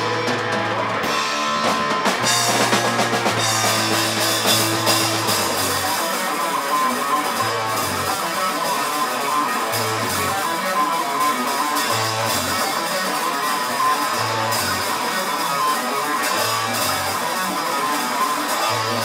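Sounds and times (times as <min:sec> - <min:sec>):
rock band playing: 0:00.0 - 0:19.0.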